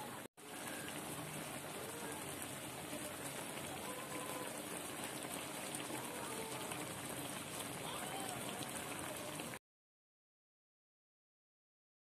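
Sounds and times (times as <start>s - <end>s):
liquid boiling in a wok: 0.0s - 9.6s.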